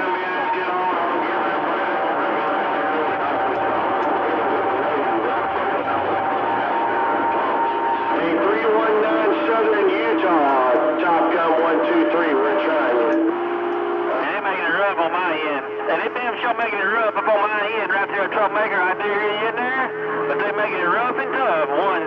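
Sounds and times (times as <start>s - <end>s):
garbled overlapping voices: 0.0s - 22.0s
radio static hiss: 8.2s - 22.0s.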